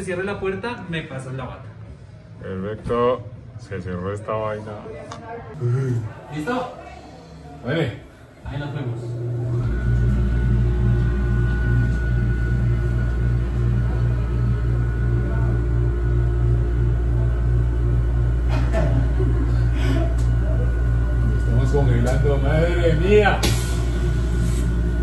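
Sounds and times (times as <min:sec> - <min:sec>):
steady low hum: 0:05.5 - 0:25.0
steady high whine: 0:06.8 - 0:25.0.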